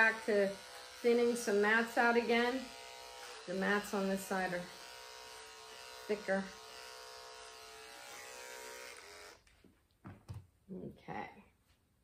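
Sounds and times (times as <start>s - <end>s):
electric clipper humming: 0.0s - 9.5s.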